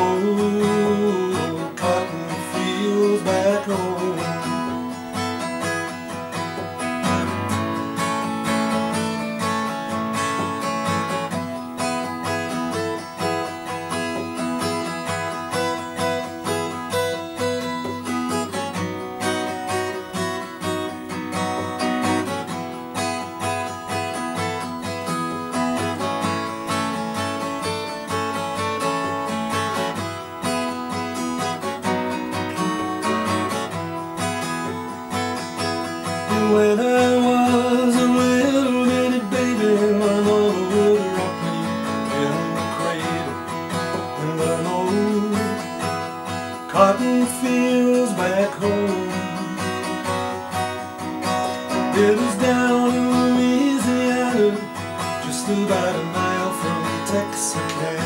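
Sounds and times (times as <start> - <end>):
person singing: 0.0 - 5.0, 36.1 - 50.0, 51.5 - 58.0
acoustic guitar strumming: 0.0 - 58.0.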